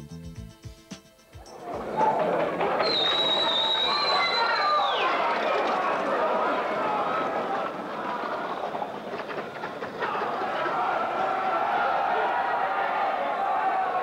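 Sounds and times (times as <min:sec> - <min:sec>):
voices: 0:01.4 - 0:14.0
continuous mechanical clatter: 0:04.8 - 0:11.3.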